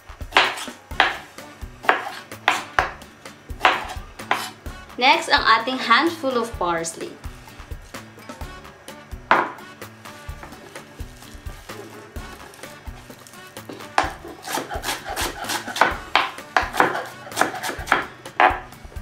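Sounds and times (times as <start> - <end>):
background music: 0.0 - 19.0
knife chopping on cutting board: 0.3 - 3.0, 3.6 - 4.6, 9.3 - 9.7, 10.3 - 10.8, 13.0 - 18.8
knock on cutting board: 1.9 - 3.0, 9.3 - 9.6, 15.8 - 17.0, 17.9 - 18.7.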